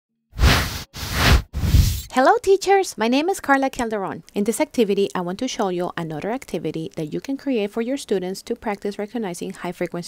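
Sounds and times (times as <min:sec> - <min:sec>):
whoosh sound effects: 0:00.4 - 0:02.1.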